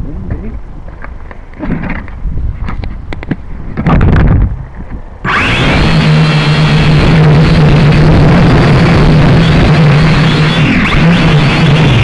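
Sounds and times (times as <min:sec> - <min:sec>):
loud steady motor noise: 0:05.2 - 0:12.0.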